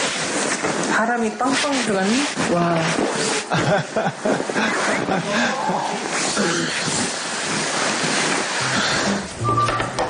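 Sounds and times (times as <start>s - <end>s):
duvet rustling: 0.0s - 9.4s
background music notes: 8.6s - 10.0s.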